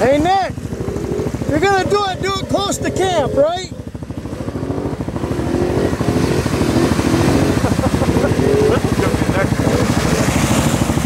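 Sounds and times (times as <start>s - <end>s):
quad engine revving: 0.0s - 11.0s
tyres churning through mud water: 0.0s - 11.0s.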